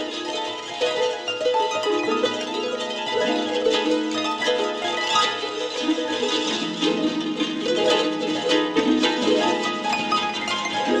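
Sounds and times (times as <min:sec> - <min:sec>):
harp plucked notes: 0:00.0 - 0:11.0.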